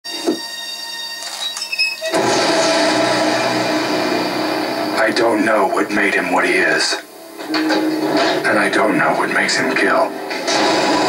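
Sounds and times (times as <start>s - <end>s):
movie trailer music through television: 0.1s - 11.0s.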